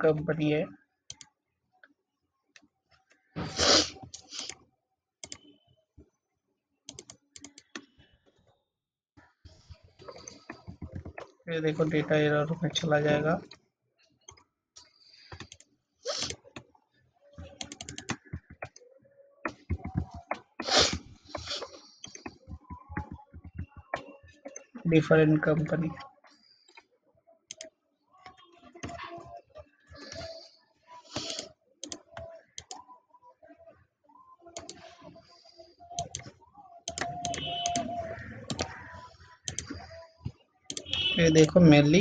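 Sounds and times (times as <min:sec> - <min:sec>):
computer mouse clicking: 0:06.9 - 0:07.9, 0:15.3 - 0:16.7, 0:17.4 - 0:18.8, 0:31.1 - 0:32.8, 0:36.0 - 0:38.8, 0:39.4 - 0:40.0, 0:40.7 - 0:41.1
computer keyboard keystrokes: 0:17.6 - 0:18.8
mouse clicks: 0:36.9 - 0:38.8.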